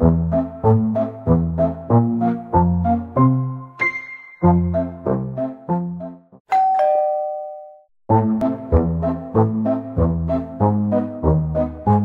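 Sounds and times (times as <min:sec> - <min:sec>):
bouncy keyboard music: 0:00.0 - 0:07.1, 0:08.1 - 0:12.0
two-note doorbell chime: 0:06.5 - 0:07.9.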